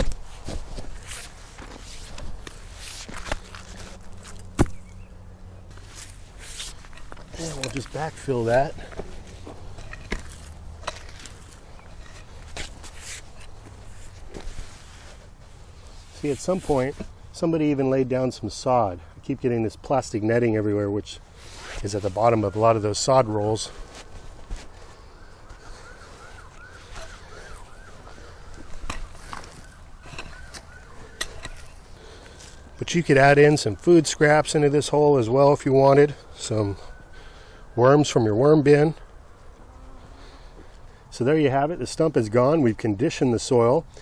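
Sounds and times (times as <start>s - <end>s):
pickaxe knocking and scraping soil: 0.0s - 4.9s, 6.0s - 13.5s
dirt thuds: 0.0s - 5.1s, 5.7s - 14.8s
soil and stones scraping: 0.0s - 5.1s, 5.7s - 17.2s, 21.3s - 36.7s.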